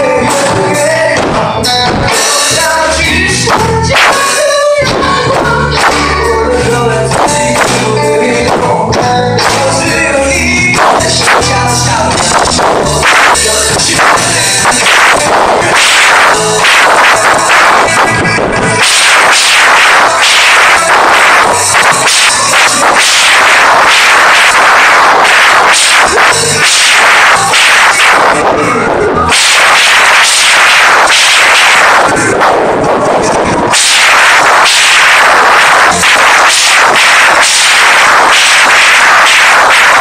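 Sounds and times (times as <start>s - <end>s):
loud live rock band: 0.0s - 40.0s.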